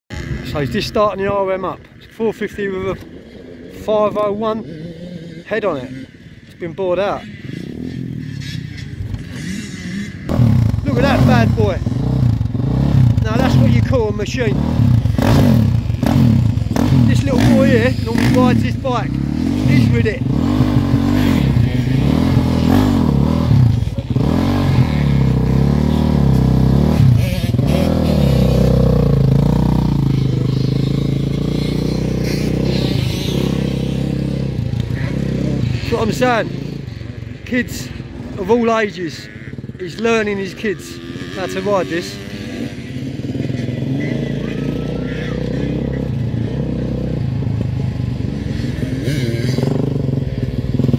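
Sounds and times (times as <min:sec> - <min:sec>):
motocross engine idling: 0:07.2 - 0:43.1.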